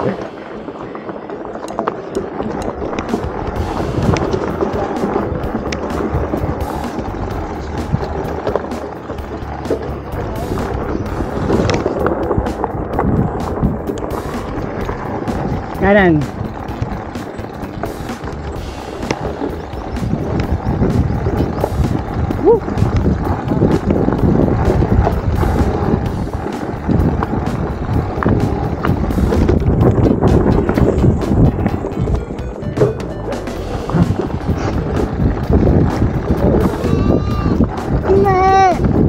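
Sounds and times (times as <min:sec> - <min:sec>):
bike rattling over bumps: 0:00.0 - 0:39.0
bike tyres rumbling on dirt: 0:00.0 - 0:39.0.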